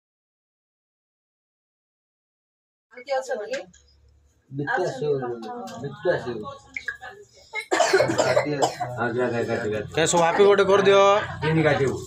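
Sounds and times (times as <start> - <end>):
people talking loudly: 4.5 - 12.0.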